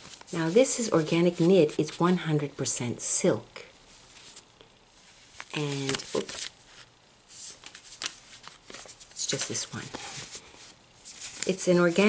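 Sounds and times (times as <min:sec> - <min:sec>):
swatch cards rustling: 0:04.0 - 0:12.0.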